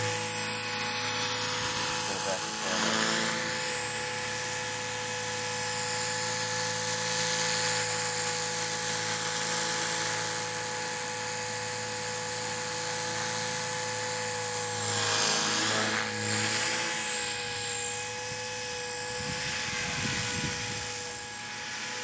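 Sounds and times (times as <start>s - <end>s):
helicopter rotor: 0.0s - 22.0s
model helicopter motor whine: 0.0s - 22.0s.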